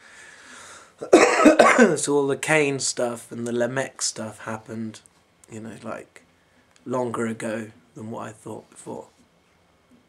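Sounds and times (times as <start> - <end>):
man coughing harshly: 1.0 - 2.0.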